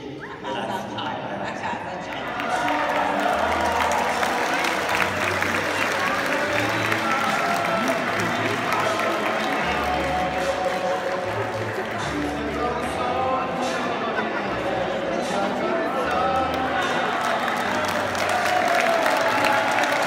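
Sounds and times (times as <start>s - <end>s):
music playing: 2.1s - 20.0s
audience applauding: 2.2s - 12.8s, 16.1s - 20.0s.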